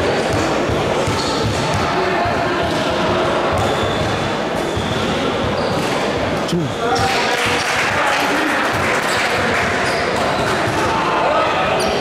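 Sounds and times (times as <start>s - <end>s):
voices and chatter: 0.0s - 12.0s.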